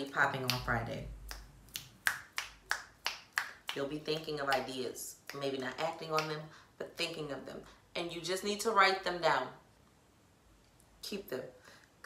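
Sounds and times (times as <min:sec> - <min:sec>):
finger snaps: 0:01.2 - 0:03.8.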